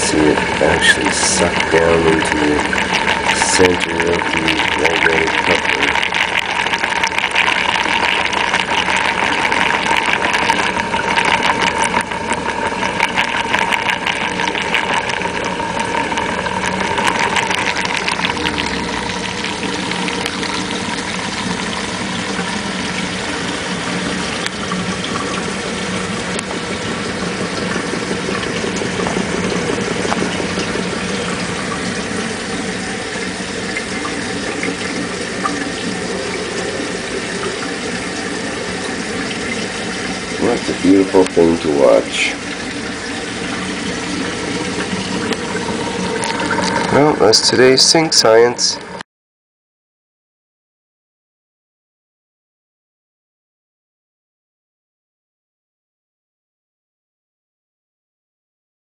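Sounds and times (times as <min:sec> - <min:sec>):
turbine whirring hum: 0:00.0 - 0:49.0
water rushing: 0:00.0 - 0:49.0.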